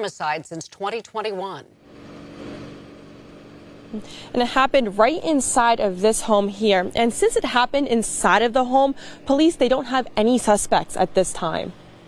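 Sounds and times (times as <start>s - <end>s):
low even hum: 1.8s - 12.0s.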